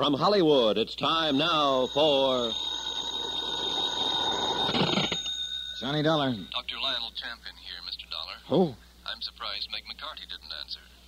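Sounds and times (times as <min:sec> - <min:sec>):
telephone bell ringing: 0:01.1 - 0:07.1.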